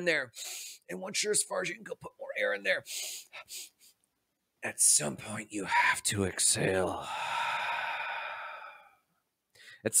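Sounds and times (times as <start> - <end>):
man exhaling: 7.0 - 9.0.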